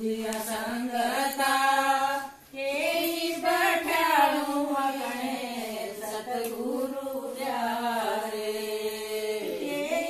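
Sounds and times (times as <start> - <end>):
women singing a devotional song: 0.0 - 10.0.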